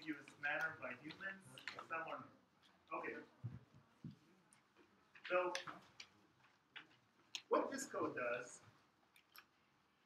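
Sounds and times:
man speaking: 0.0 - 3.4, 5.2 - 6.0, 7.4 - 8.7.

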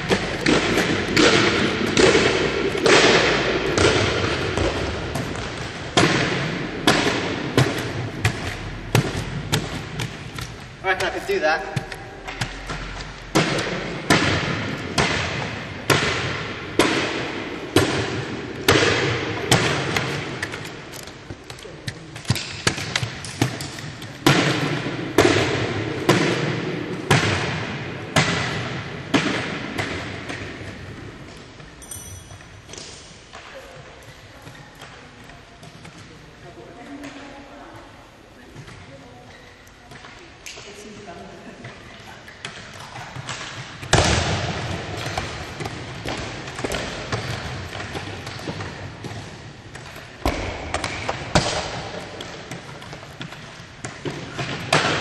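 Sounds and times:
stilts thudding on hall floor: 0.0 - 34.2, 42.4 - 55.0.

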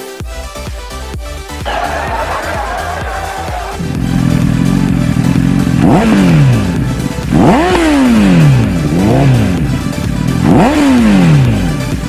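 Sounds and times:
background music: 0.0 - 12.0
motorcycle engine revving: 1.7 - 12.0
motorcycle engine running: 1.7 - 12.0.

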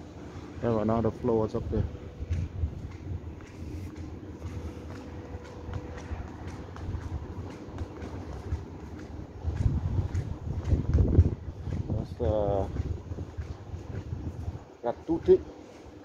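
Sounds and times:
distant traffic hum: 0.0 - 16.0
wind buffeting microphone: 1.0 - 15.5.

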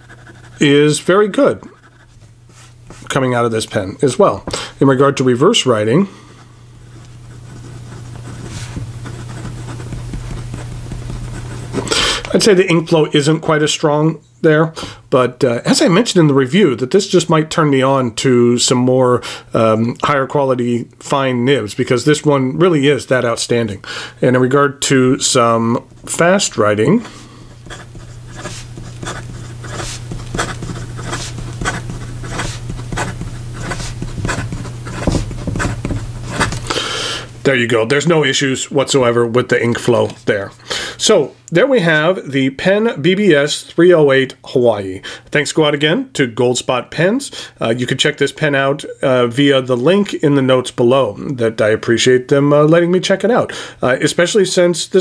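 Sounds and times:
pen nib scratching on paper: 0.0 - 0.7, 1.6 - 2.2, 6.8 - 11.9, 27.0 - 36.8
steady low hum: 0.0 - 13.1, 20.8 - 41.5.

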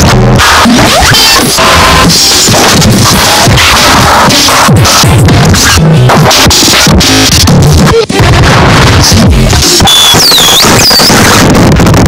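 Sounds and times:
distorted noise music: 0.0 - 12.0.

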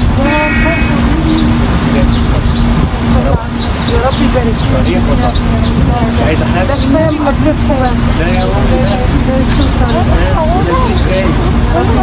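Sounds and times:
crowd voices: 0.0 - 12.0
street traffic noise: 0.0 - 12.0
car horn: 0.2 - 1.2.

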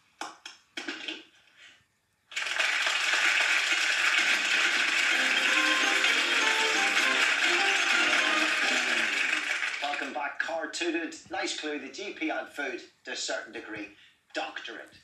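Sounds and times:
audience applause: 2.3 - 10.2
game show music: 4.0 - 10.2.

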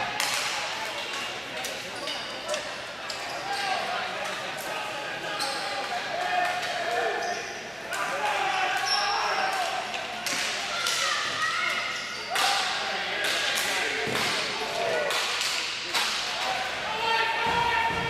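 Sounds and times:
spectators chatting: 0.0 - 18.0
players shouting: 3.3 - 15.4, 16.0 - 18.0.

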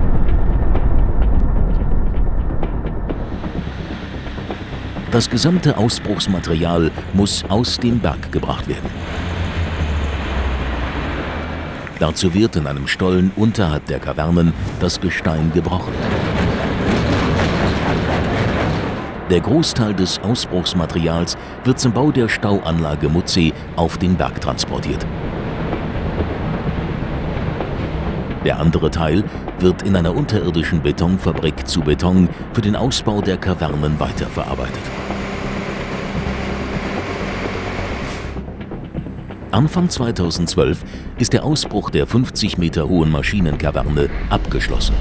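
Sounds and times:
heavy machinery engine hum: 0.0 - 19.3, 20.2 - 28.6, 33.4 - 39.4.

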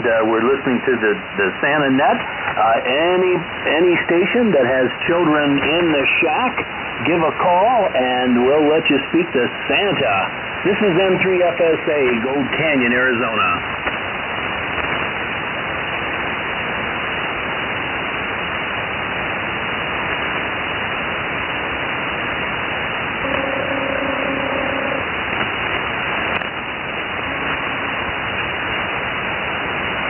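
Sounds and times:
radio band noise hiss: 0.0 - 30.0.

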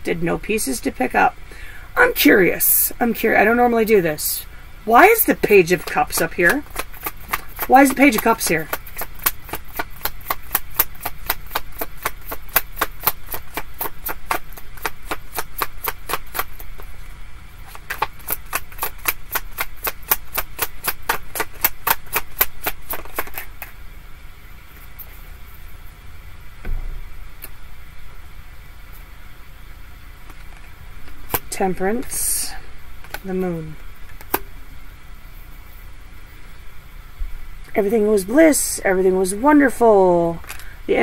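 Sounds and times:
cards being shuffled: 4.9 - 23.8
soft thump: 26.6 - 27.1.

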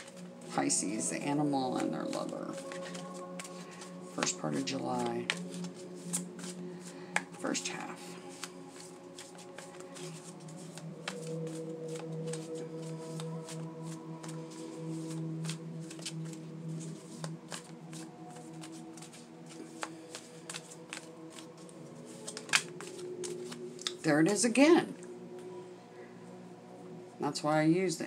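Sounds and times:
tarot cards shuffling: 0.0 - 24.0
soft background music: 0.0 - 28.0.

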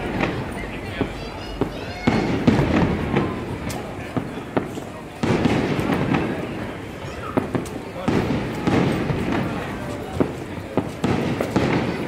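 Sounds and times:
rumbling firework booms: 0.0 - 12.0.

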